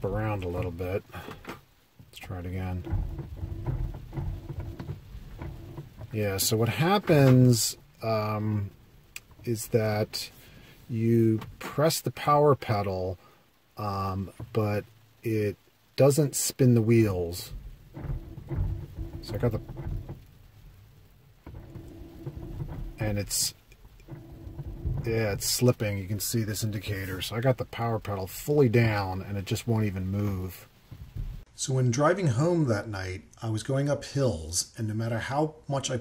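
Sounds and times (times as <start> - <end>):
crunching clicks from tyres: 0.0 - 10.7, 16.9 - 28.2
low rumble of car in snow: 0.0 - 31.4.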